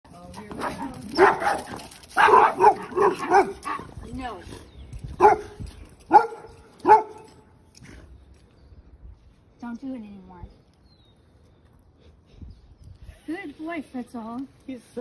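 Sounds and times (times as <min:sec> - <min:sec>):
dog barking sharply: 0:02.2 - 0:03.6, 0:05.2 - 0:07.2.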